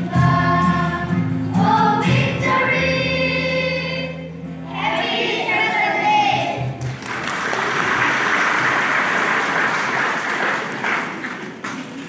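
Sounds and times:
children's choir singing: 0:00.0 - 0:06.8
audience applause: 0:06.8 - 0:12.0.

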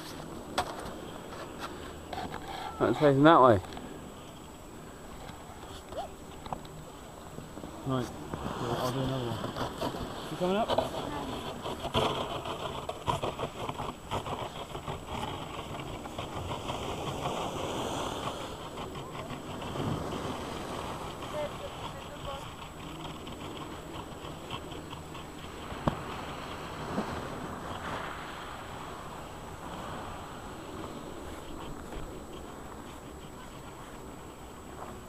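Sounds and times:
wind noise on microphone: 0:08.2 - 0:35.0.

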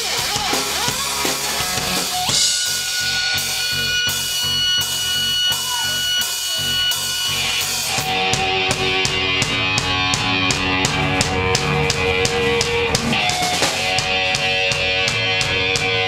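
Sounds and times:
drum kit: 0:00.0 - 0:16.0
live rock band playing: 0:00.0 - 0:16.0
electric guitar notes ringing: 0:01.6 - 0:16.0.

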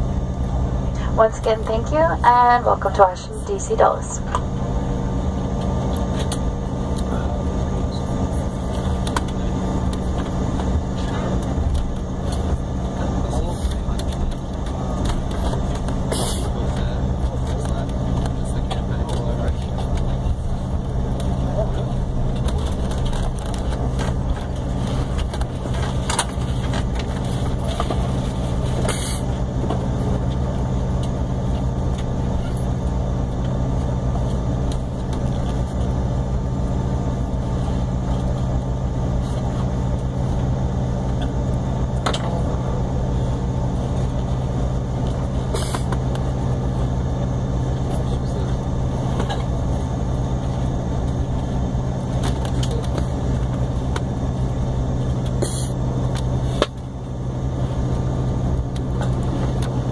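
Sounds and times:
cabin air: 0:00.0 - 0:59.9
jet engines at low power: 0:00.0 - 0:59.9.

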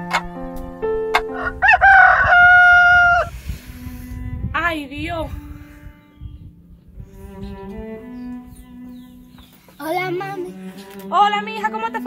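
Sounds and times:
soft plucked background music: 0:00.0 - 0:12.0
rooster crowing: 0:01.3 - 0:03.3.

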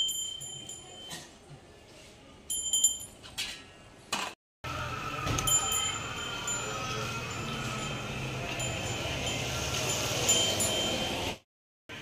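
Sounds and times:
chime-like ringing tones: 0:00.0 - 0:01.3, 0:05.2 - 0:11.4.

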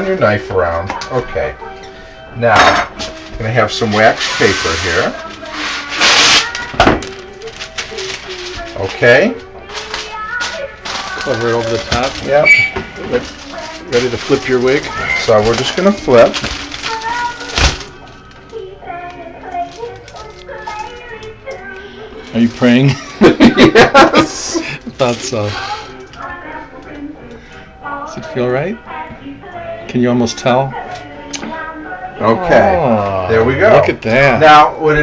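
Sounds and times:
background music: 0:00.0 - 0:35.0
wax paper rustling and crinkling: 0:03.0 - 0:26.0.

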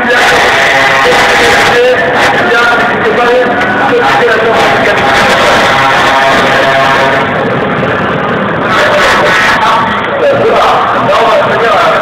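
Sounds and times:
trucks driving past: 0:00.3 - 0:12.0
truck horn: 0:04.5 - 0:07.3.

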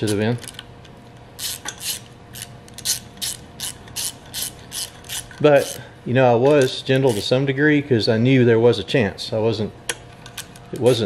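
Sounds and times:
socket ratchet clicking: 0:01.4 - 0:05.8, 0:06.5 - 0:07.3.

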